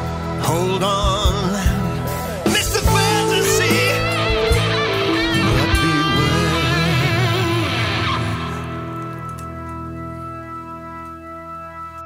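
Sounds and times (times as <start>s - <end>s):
electric guitar bent notes: 0.0s - 12.0s
rock band backing: 0.0s - 12.0s.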